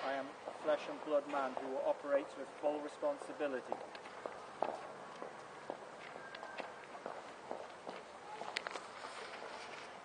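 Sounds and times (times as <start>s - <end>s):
footsteps on paved street: 0.0s - 10.0s.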